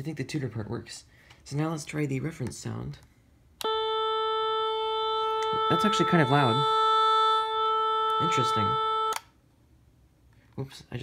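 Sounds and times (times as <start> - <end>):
steady electronic tone: 3.6 - 9.2.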